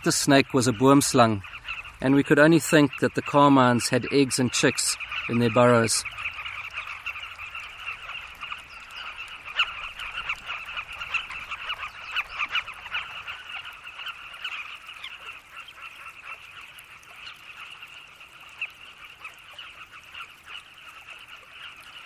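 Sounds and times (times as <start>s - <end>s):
birds calling in chorus: 0.0s - 22.0s.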